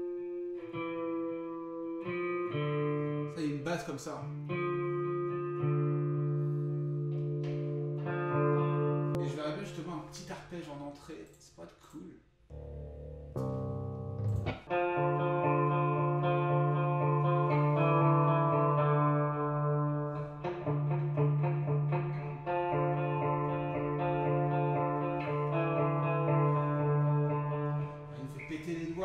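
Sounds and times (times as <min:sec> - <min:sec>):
electric guitar arpeggio: 0:00.0 - 0:03.4, 0:04.2 - 0:09.8, 0:12.5 - 0:28.5.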